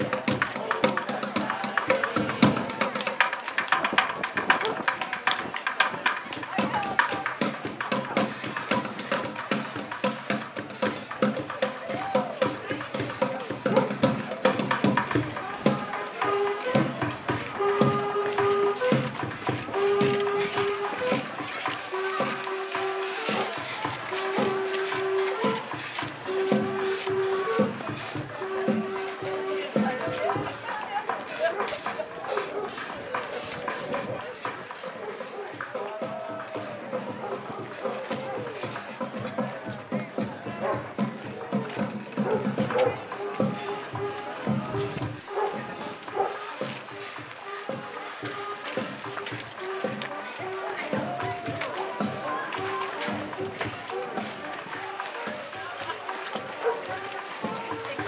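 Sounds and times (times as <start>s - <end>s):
parade street music: 0.0s - 58.0s
people talking in crowd: 0.0s - 58.0s
percussion clicks and knocks: 0.0s - 58.0s.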